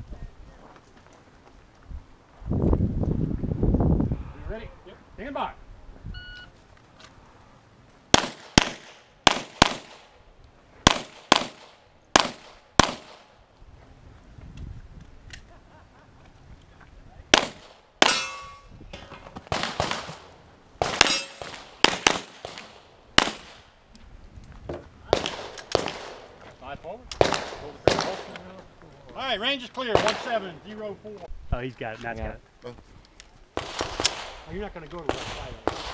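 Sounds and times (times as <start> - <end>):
shot timer beep: 6.1 - 6.5
steel target ringing: 18.0 - 18.8, 21.0 - 21.4.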